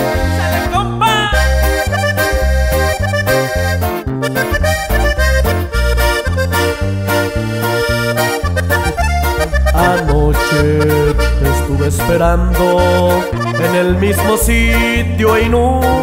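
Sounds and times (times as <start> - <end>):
bass line: 0.0 - 16.0
button accordion melody: 0.0 - 16.0.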